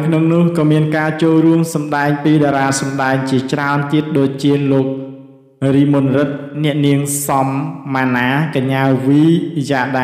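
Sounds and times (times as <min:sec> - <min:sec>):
man reading news: 0:00.0 - 0:05.0.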